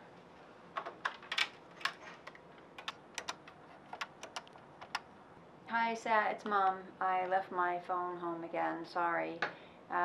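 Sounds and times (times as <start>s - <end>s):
telephone keypad clicks: 2.8s - 5.0s
recorded voice: 5.7s - 10.0s.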